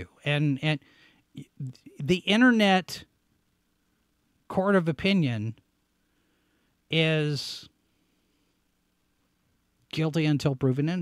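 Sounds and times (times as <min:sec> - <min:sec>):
man speaking: 0:00.0 - 0:00.8, 0:01.4 - 0:03.1, 0:04.5 - 0:05.6, 0:06.9 - 0:07.8, 0:09.9 - 0:11.0
faint steady hum: 0:00.0 - 0:11.0.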